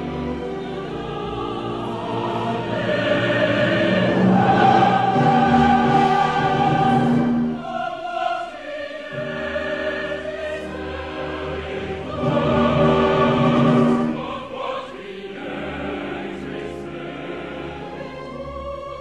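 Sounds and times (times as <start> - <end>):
choir and orchestra: 0.0 - 19.0.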